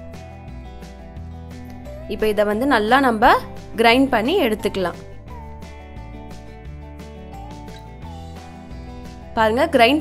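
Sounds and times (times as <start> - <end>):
country-folk instrumental music: 0.0 - 10.0.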